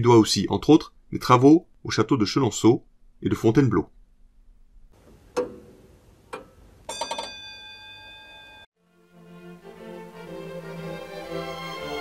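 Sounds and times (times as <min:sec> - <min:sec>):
clock bell strikes: 0:06.9 - 0:08.7.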